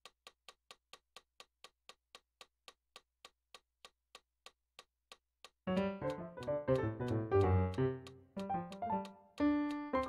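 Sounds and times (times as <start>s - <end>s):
metronome clicks: 5.7s - 10.0s.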